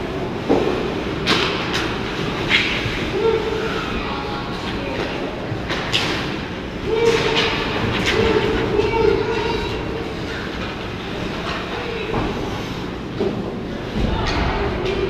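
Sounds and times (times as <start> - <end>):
players' voices: 0.0 - 15.0
sticks and puck clacking: 0.4 - 3.3, 4.5 - 12.4.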